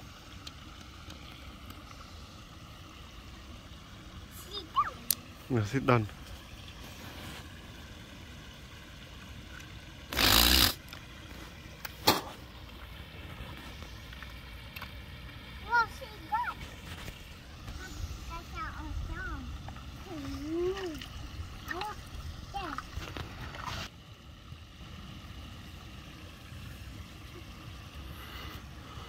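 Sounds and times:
stream running: 0:00.0 - 0:29.0
water bubbling from jet: 0:09.1 - 0:24.0.

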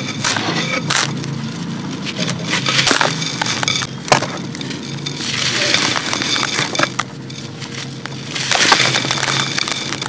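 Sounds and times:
chunk cracking: 0:00.0 - 0:10.0
gritty sand pouring into pot: 0:04.7 - 0:10.0.

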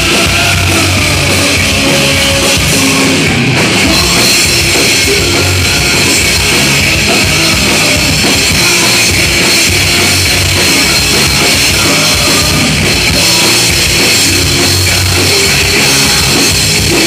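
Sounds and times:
bass guitar: 0:00.0 - 0:17.0
distorted electric guitar: 0:00.0 - 0:17.0
drum kit: 0:00.0 - 0:17.0.

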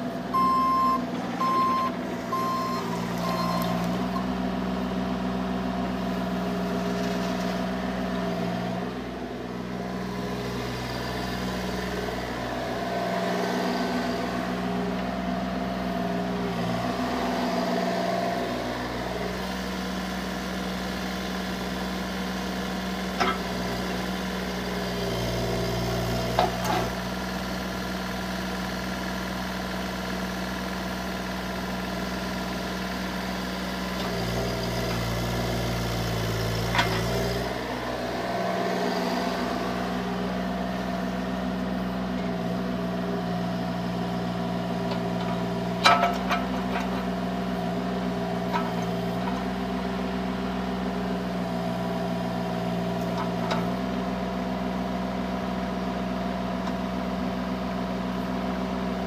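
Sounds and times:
diesel excavator engine running: 0:00.0 - 0:59.0.

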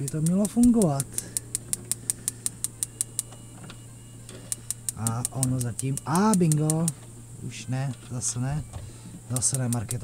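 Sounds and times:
gas hob igniter clicking: 0:00.0 - 0:03.3, 0:04.5 - 0:07.0, 0:09.3 - 0:10.0
low hum: 0:00.0 - 0:10.0.

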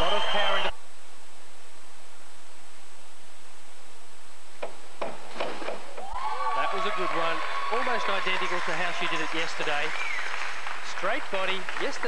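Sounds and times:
tape hiss: 0:00.0 - 0:12.0.

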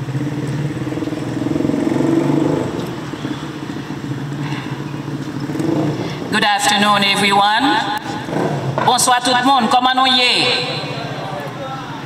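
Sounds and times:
woman speaking over public address: 0:06.3 - 0:08.2, 0:08.8 - 0:11.1.

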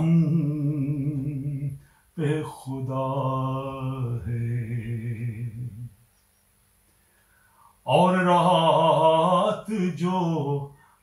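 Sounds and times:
man singing unaccompanied: 0:00.0 - 0:06.0, 0:07.8 - 0:11.0.

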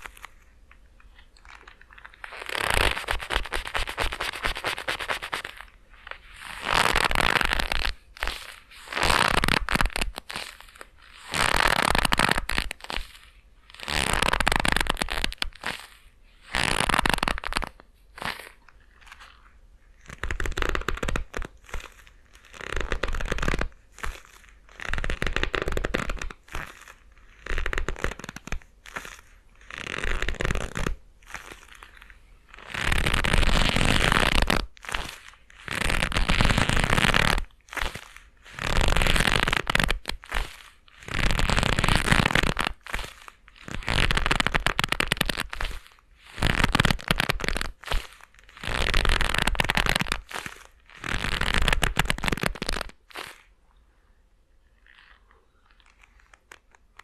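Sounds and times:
leather gloves rubbing and creaking: 0:00.0 - 0:53.6, 0:54.8 - 0:57.0.

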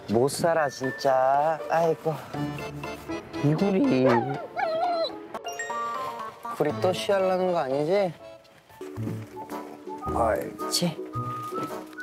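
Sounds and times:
background music with chimes: 0:00.3 - 0:02.8, 0:05.4 - 0:06.9
dog whining: 0:04.0 - 0:05.3.

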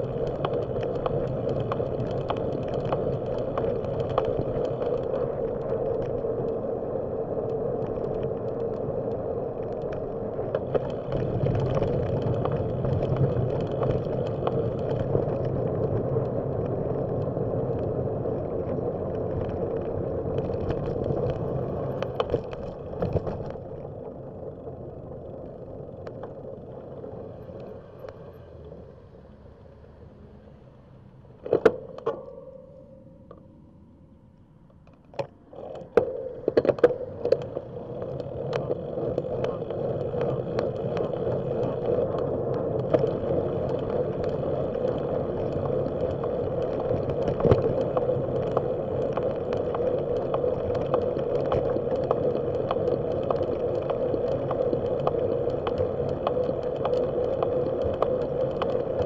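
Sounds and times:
bike clicks and rattles: 0:00.0 - 0:28.6, 0:34.8 - 0:59.0
bicycle tyres rolling on asphalt: 0:00.0 - 0:33.4, 0:34.8 - 0:59.0.

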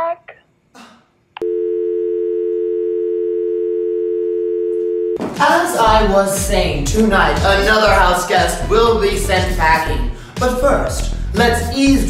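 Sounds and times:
telephone dial tone: 0:01.4 - 0:05.2.

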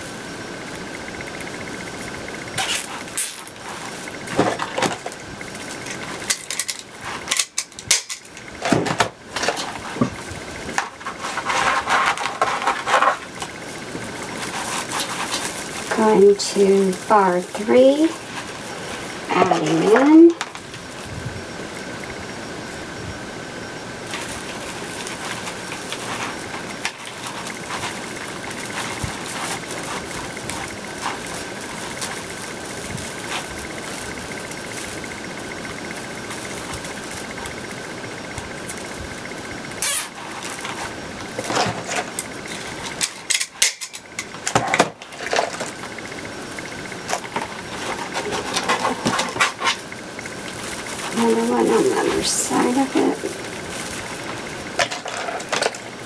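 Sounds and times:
faint high whine: 0:00.0 - 0:56.0
steady background hiss: 0:00.0 - 0:56.0
plastic mesh rustling and crinkling: 0:01.5 - 0:21.1, 0:24.0 - 0:56.0.

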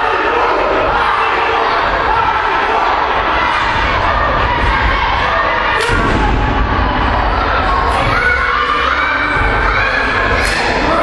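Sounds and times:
audience shouting and cheering: 0:00.0 - 0:11.0.

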